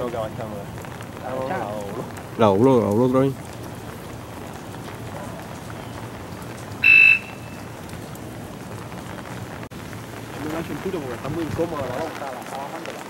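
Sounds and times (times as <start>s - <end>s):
light drizzle hissing: 0.0s - 13.0s.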